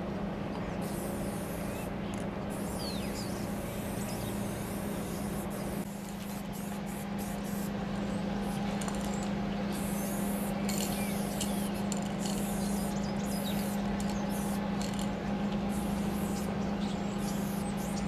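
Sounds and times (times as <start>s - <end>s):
spray can hissing: 3.7s - 7.7s, 9.8s - 14.6s.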